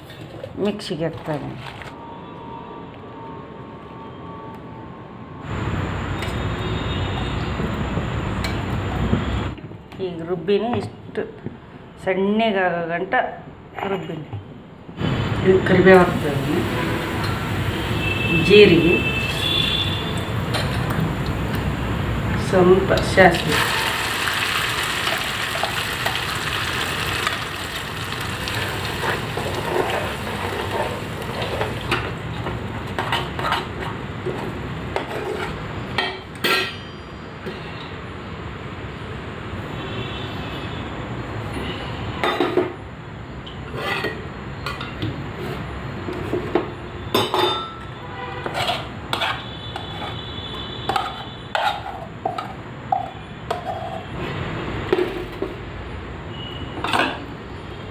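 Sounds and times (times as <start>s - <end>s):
sizzling in a hot pot: 16.1s - 18.2s, 23.0s - 33.8s.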